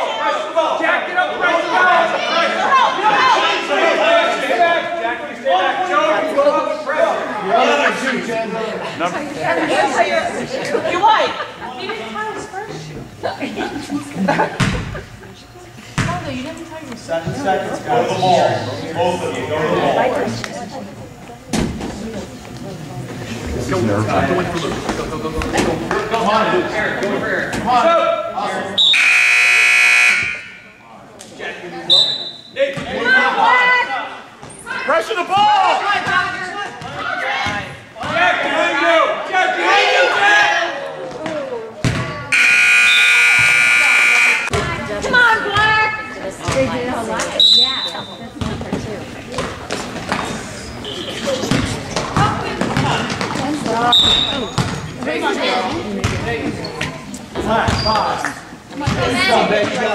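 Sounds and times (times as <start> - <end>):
crowd voices: 0.0 - 59.9
referee whistle blasts: 28.8 - 30.7, 31.9 - 32.6, 42.4 - 44.5, 47.4 - 48.2, 53.9 - 54.5
scoreboard buzzer: 28.8 - 30.8, 42.3 - 44.6
basketball bouncing on floor: 51.5 - 54.8.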